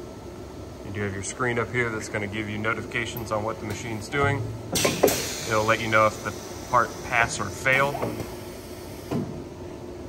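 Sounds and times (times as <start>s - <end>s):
machine humming: 0.0s - 10.0s
mechanical clunk: 4.7s - 5.5s.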